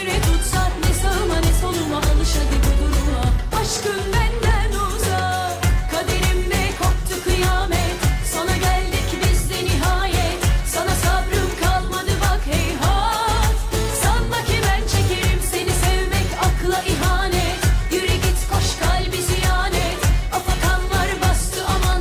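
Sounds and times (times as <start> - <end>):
music with steady beat: 0.0 - 22.0
woman singing pop song: 0.0 - 22.0.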